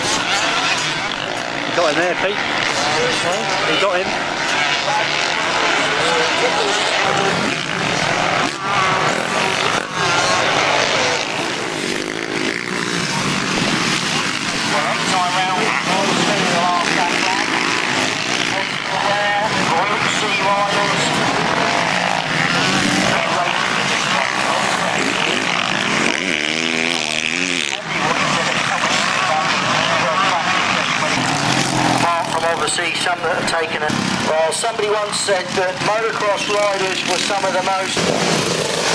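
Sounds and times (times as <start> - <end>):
motocross bikes revving: 0.0 - 38.9.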